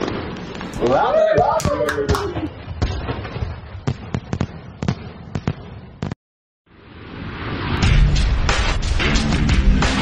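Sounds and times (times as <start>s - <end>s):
fireworks bangs and cracks: 0.0s - 6.2s.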